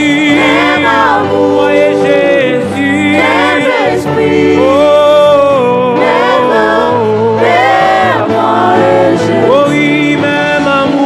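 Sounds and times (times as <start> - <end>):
backing singers: 0.0 - 10.7.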